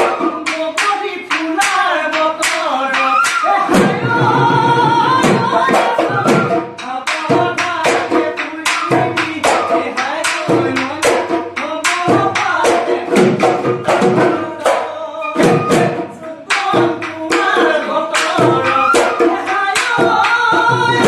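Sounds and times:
drum beating fast rhythm: 0:00.0 - 0:21.0
men singing: 0:00.0 - 0:21.0.

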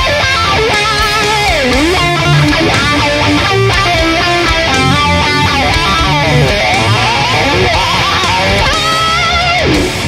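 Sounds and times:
distorted electric guitar lead: 0:00.0 - 0:10.0.

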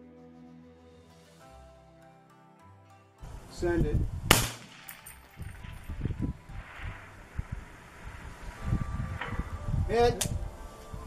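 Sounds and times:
rifle shot: 0:04.3 - 0:08.6
low thumps and rumbles: 0:05.3 - 0:11.0.

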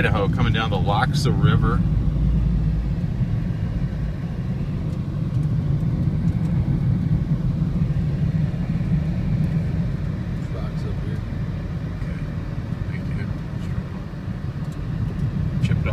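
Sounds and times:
car tyres and engine rumble: 0:00.0 - 0:15.9.

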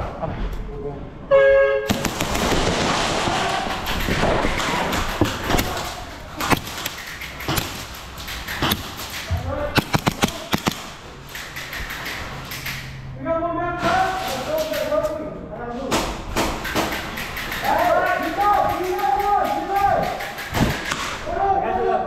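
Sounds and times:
airsoft pistol shots: 0:01.9 - 0:11.0, 0:20.1 - 0:21.2.

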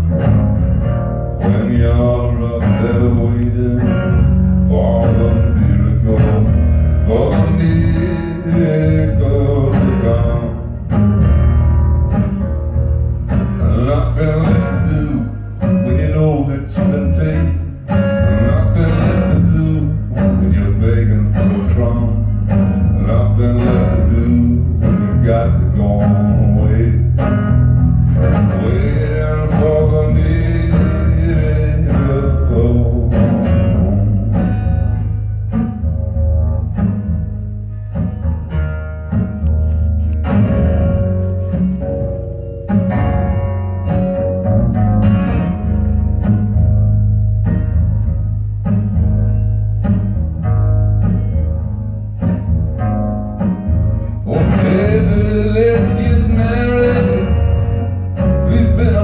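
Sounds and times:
amplified acoustic guitar: 0:00.0 - 0:59.0.

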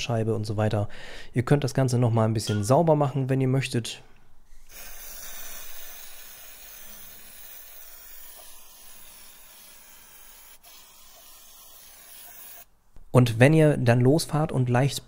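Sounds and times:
aerosol spray hissing: 0:04.6 - 0:12.7.

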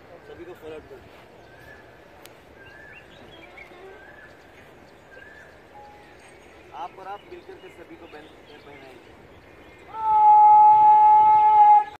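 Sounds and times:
horn holding a long note: 0:09.9 - 0:12.0.

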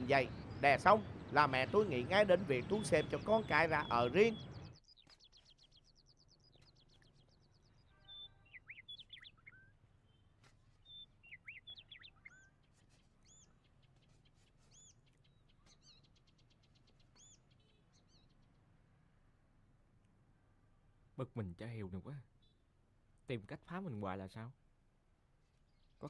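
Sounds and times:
birds chirping: 0:00.0 - 0:23.6.

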